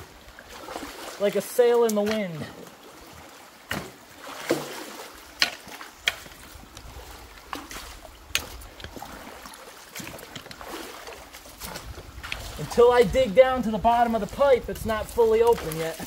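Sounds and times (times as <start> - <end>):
flowing water: 0.0 - 16.0
water splashing and sloshing: 0.0 - 16.0
rake dragged through mud and water: 3.7 - 16.0.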